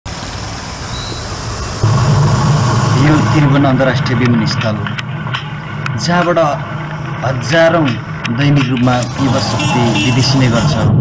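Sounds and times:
road traffic noise: 0.0s - 11.0s
deep engine hum: 0.1s - 11.0s.

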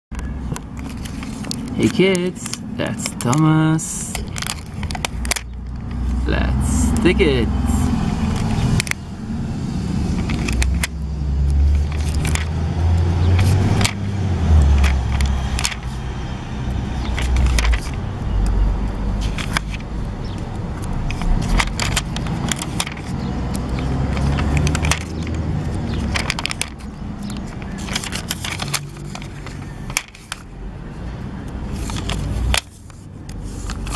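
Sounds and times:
plastic sticker sheets crackling: 0.2s - 9.0s, 9.9s - 30.5s, 31.4s - 33.9s.

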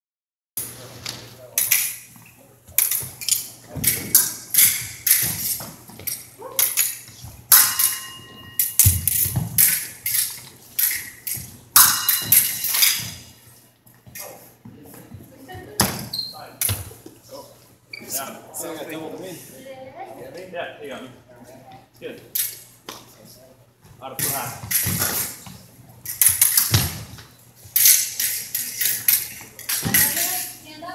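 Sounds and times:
fencing blades clinking: 1.5s - 13.3s, 22.3s - 22.7s, 24.2s - 30.7s.

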